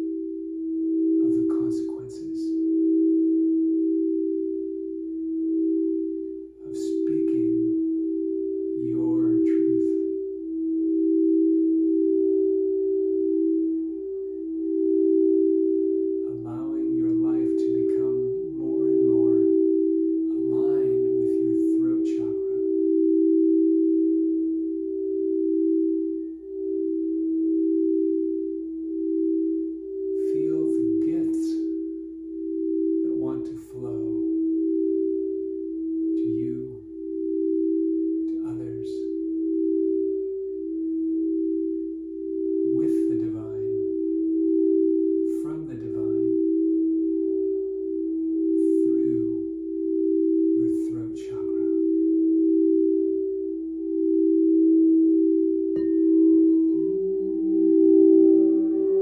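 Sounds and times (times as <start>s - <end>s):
crystal singing bowls tones: 0.0s - 59.0s.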